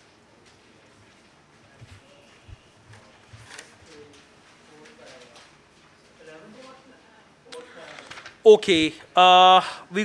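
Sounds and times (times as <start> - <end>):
page rustle: 7.9 - 8.4.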